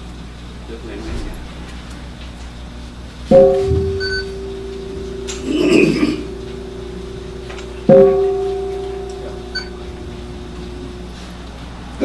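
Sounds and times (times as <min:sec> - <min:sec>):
bowl bell ringing: 0:03.3 - 0:11.8.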